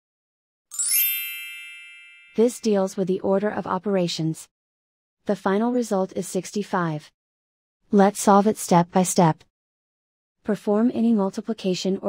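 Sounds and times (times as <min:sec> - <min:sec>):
bright electronic chime: 0:00.7 - 0:02.7.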